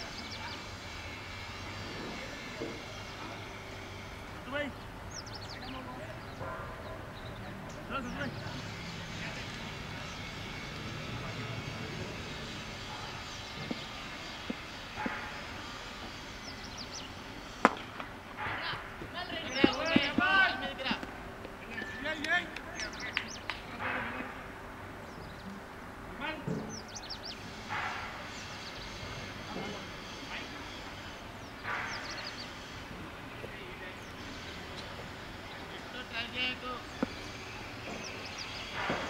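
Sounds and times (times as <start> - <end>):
players shouting: 18.4 - 21.1.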